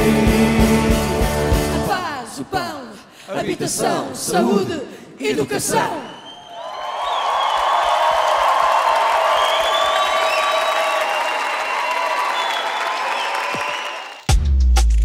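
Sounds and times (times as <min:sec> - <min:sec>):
audience applauding and cheering: 0:06.3 - 0:14.4.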